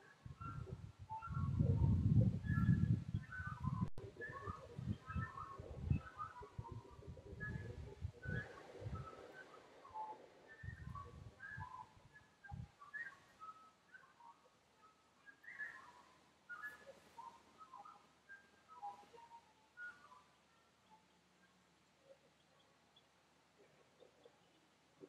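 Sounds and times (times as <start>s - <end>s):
small birds chirping: 0.0s - 25.0s.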